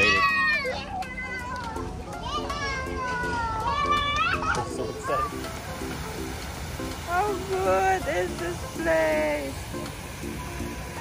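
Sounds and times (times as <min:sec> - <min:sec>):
children squealing excitedly: 0:00.0 - 0:01.6
background music with beat: 0:00.0 - 0:11.0.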